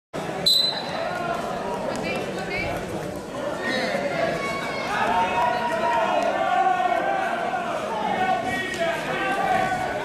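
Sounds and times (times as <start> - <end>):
crowd voices in a gym: 0.2 - 10.0
referee whistle blast: 0.4 - 0.9.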